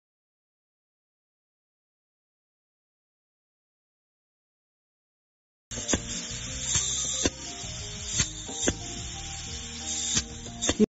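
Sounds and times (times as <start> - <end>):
background music: 5.7 - 10.9
compressed air hissing: 5.7 - 10.9
solenoid valve clicking: 5.8 - 10.8.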